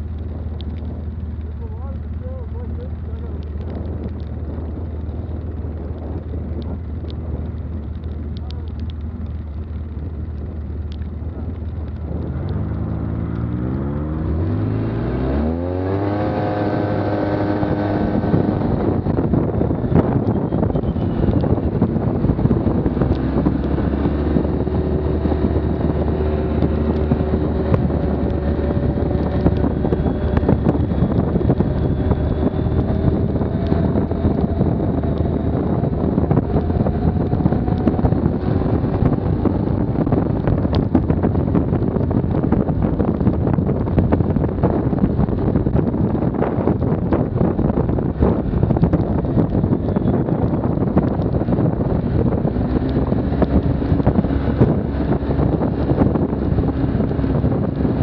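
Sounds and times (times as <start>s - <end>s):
atv engine idling and revving: 0.0s - 58.0s
wind noise: 0.0s - 58.0s.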